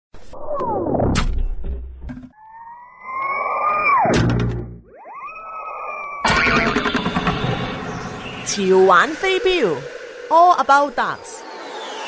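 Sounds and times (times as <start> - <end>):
rising synthetic tone: 2.4 - 12.0
building rumble: 6.3 - 12.0.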